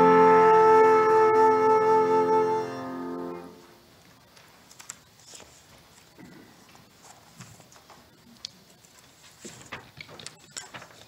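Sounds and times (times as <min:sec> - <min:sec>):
faint footsteps: 0:03.6 - 0:11.0.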